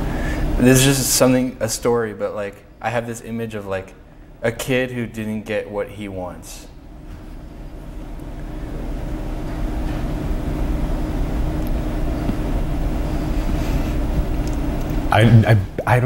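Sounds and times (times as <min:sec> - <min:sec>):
faint hum: 0:00.0 - 0:16.0
low steady rumble: 0:00.0 - 0:16.0.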